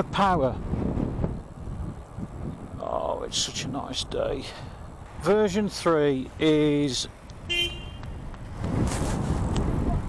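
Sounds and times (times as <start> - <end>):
road and tyre noise: 0.0 - 10.0
wind rumbling on microphone: 0.0 - 10.0.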